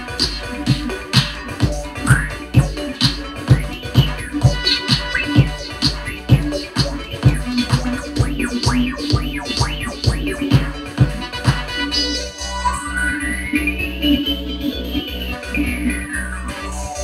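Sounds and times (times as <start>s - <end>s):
electronic dance music beat: 0.0s - 17.0s
record scratching: 0.0s - 17.0s.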